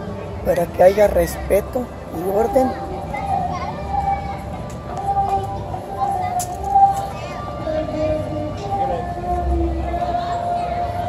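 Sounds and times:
children's voices and shouts: 0.5 - 11.0.

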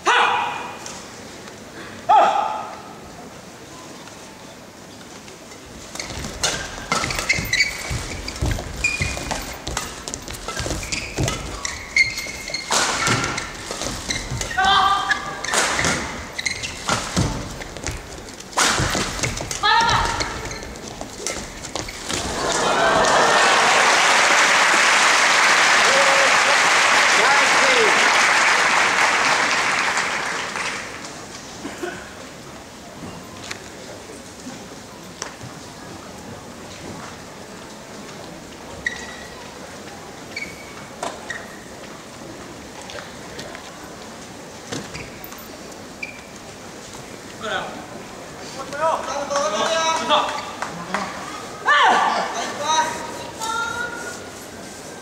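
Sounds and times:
shoe squeaks: 5.9 - 22.3, 38.7 - 39.6, 40.3 - 41.8, 44.7 - 46.4
crowd applauding and cheering: 22.3 - 31.0.

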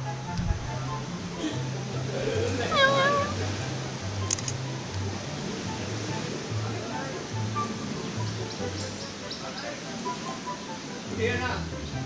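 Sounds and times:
background music with bass line: 0.0 - 12.0
cat meowing: 2.6 - 3.4
short clicks: 4.2 - 4.6.

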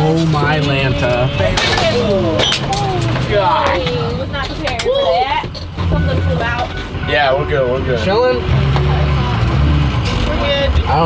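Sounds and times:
bus engine droning under load: 0.0 - 11.0.

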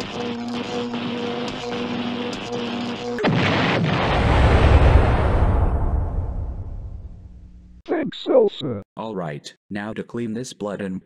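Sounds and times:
pulsing electronic hum: 0.0 - 4.0, 6.2 - 7.8
loud explosion: 3.2 - 7.4.

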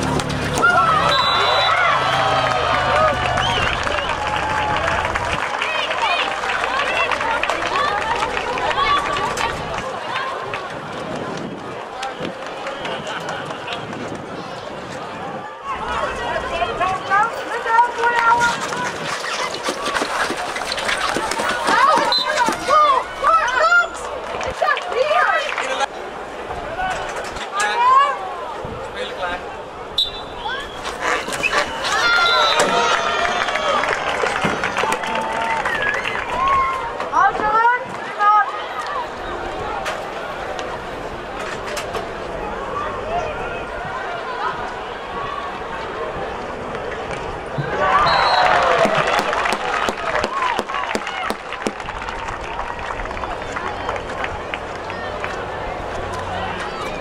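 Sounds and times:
crowd chatter: 0.0 - 57.0
short high whistle blast: 1.1 - 1.9, 30.0 - 30.7.

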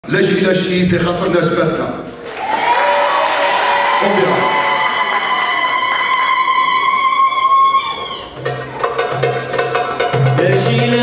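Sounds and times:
audience applauding: 2.2 - 8.3.

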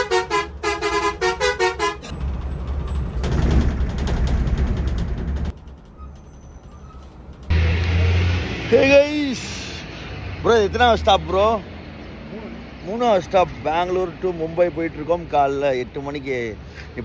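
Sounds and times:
coach engine and road noise: 0.0 - 17.0.

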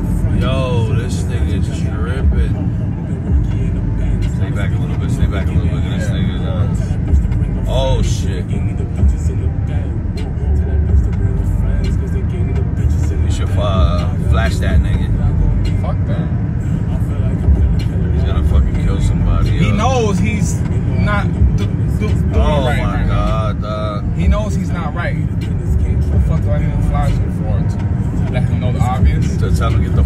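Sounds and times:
vehicle cabin engine rumble: 0.0 - 30.0.

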